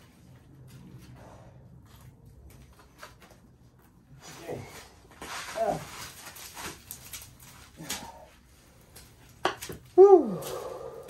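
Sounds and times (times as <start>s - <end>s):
fibreglass crackling and snapping: 5.2s - 11.0s
person grunting: 10.0s - 11.0s.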